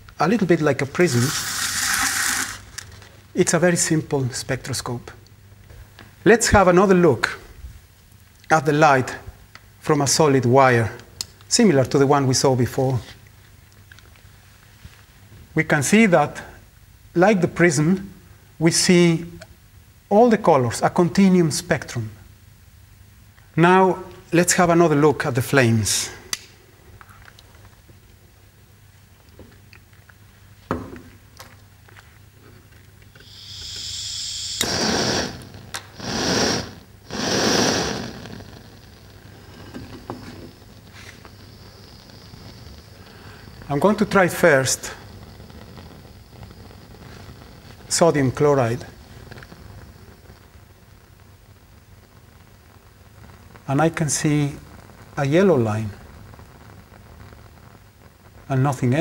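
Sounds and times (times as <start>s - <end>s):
gas hissing: 0.0s - 4.5s, 32.3s - 59.0s
blowtorch flame burning: 0.8s - 3.3s, 30.0s - 59.0s.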